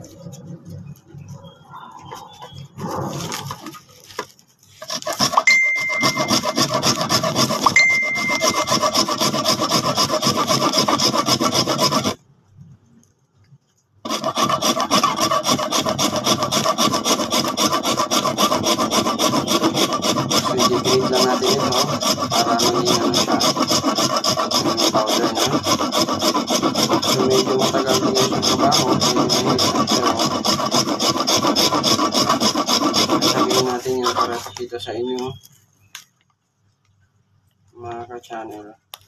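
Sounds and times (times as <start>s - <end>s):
salt block rasping on a grater: 4.7s - 12.2s, 14.1s - 35.4s.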